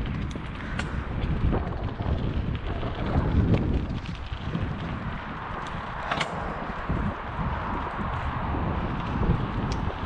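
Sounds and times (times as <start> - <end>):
bike clicks and knocks: 0.0 - 10.0
mountain bike rattling on dirt trail: 0.0 - 10.0
wind buffeting microphone: 0.0 - 10.0.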